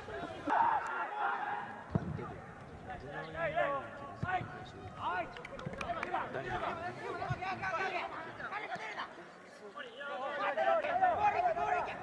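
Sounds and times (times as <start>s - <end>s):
players shouting: 0.0s - 9.1s, 10.0s - 12.0s.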